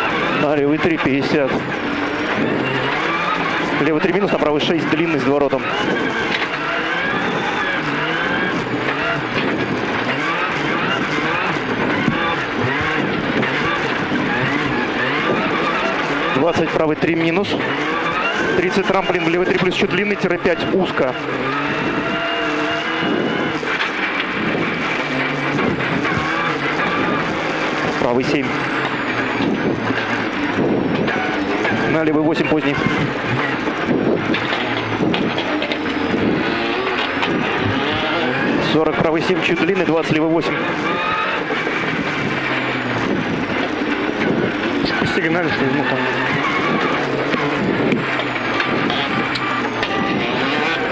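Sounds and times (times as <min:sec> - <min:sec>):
rally car engine revving: 0:00.0 - 0:50.9
tyres on gravel: 0:00.0 - 0:50.9.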